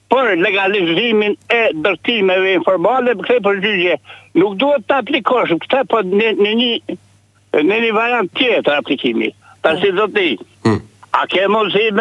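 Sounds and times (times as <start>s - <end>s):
caller talking over telephone line: 0.1s - 12.0s.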